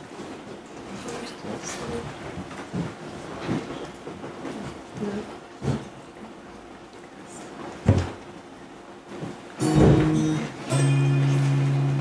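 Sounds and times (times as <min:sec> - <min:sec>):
microphone handling thump: 0:09.8 - 0:10.2.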